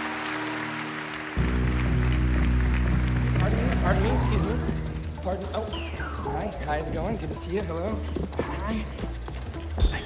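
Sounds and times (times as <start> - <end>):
stage show music: 0.0 - 9.0.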